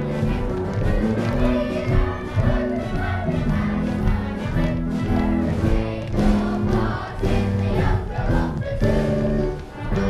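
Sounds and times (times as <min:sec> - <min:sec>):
children's chorus singing: 0:00.0 - 0:10.0.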